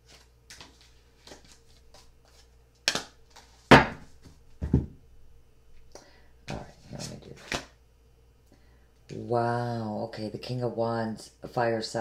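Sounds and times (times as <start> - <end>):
cards rustling and tapping on cloth: 0.1 - 4.8.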